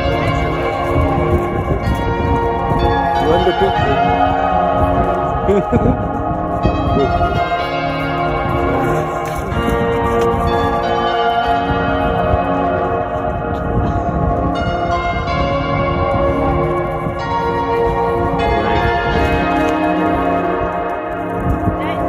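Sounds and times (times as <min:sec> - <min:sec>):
bells ringing: 0:00.0 - 0:22.0
low rumbling noise: 0:00.0 - 0:22.0.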